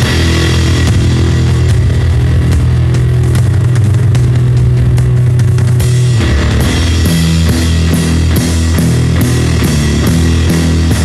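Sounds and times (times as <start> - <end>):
distorted guitar chord drone: 0.0 - 11.0.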